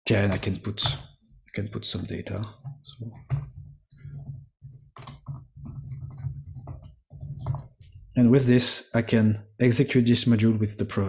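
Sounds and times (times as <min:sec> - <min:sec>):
computer keyboard typing: 0:03.0 - 0:07.9.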